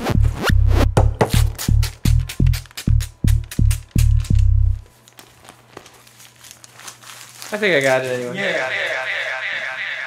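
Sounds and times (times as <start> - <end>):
electronic dance beat: 0.0 - 4.2.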